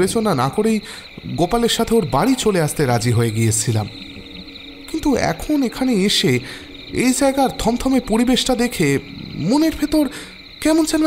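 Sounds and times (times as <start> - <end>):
man speaking: 0.0 - 4.0, 4.9 - 11.0
crickets chirping: 0.0 - 11.0.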